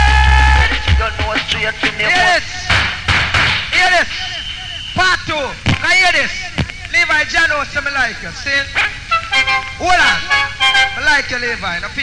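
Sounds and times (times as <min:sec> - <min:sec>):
person chanting over music: 0:00.0 - 0:02.8
reggae music: 0:00.0 - 0:04.8, 0:08.6 - 0:11.3.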